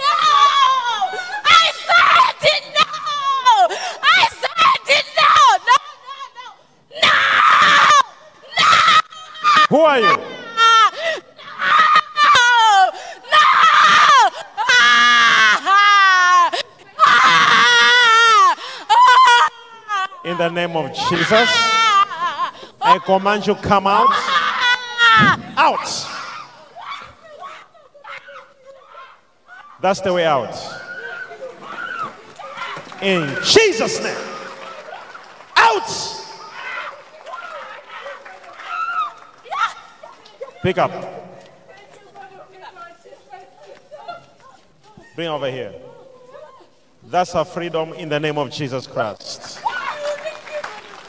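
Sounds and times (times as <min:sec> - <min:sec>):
woman screaming into a microphone: 0:00.0 - 0:23.0, 0:23.9 - 0:29.8
woman wailing cries: 0:07.0 - 0:23.0, 0:23.9 - 0:29.7
person preaching: 0:09.5 - 0:11.1, 0:19.4 - 0:26.4, 0:29.8 - 0:30.9, 0:33.0 - 0:34.6, 0:35.6 - 0:36.6, 0:40.6 - 0:41.8, 0:45.0 - 0:45.9
man shouting loudly: 0:09.6 - 0:10.6, 0:20.2 - 0:21.9, 0:22.8 - 0:24.4, 0:25.4 - 0:26.2, 0:29.8 - 0:30.9, 0:33.0 - 0:34.4, 0:35.6 - 0:36.4, 0:40.6 - 0:41.2.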